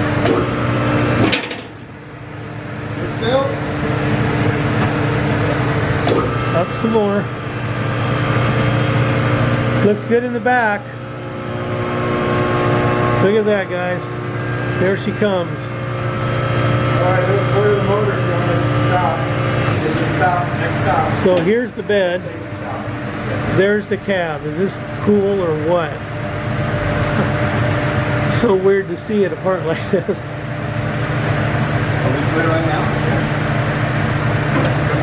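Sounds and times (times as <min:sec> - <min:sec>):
hydraulic power unit whine: 0:00.0 - 0:35.0.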